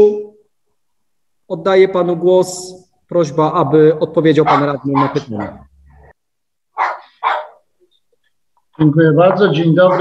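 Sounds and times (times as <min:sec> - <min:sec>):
dog barking: 0:04.4 - 0:06.1, 0:06.7 - 0:07.7, 0:09.8 - 0:10.0.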